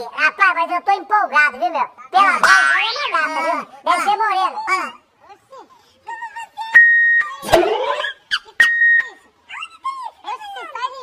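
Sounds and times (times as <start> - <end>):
high-pitched voices: 2.0 - 5.1, 6.1 - 9.9
electronic beeps: 6.8 - 9.0.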